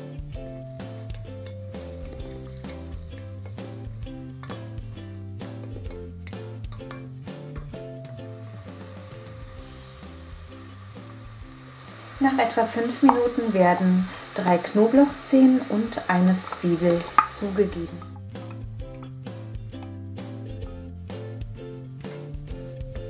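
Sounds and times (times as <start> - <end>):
background music with beat: 0.0 - 12.3, 17.9 - 23.0
carrots sizzling in hot oil: 0.4 - 6.0, 8.0 - 18.5.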